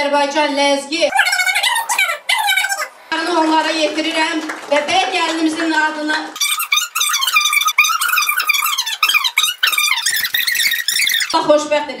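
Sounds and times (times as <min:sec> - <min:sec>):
woman speaking: 0:00.0 - 0:06.4, 0:11.4 - 0:12.0
high-pitched chipmunk voice: 0:01.1 - 0:02.9, 0:06.4 - 0:11.4.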